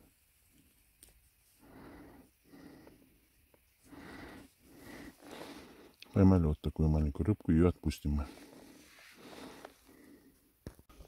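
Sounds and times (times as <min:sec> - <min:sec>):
faint breathing: 0:01.4 - 0:06.2, 0:08.2 - 0:11.0.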